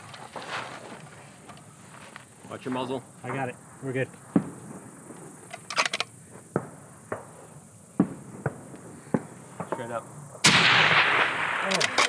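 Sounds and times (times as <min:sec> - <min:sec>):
rifle clicks: 0:05.5 - 0:06.1, 0:11.7 - 0:12.0.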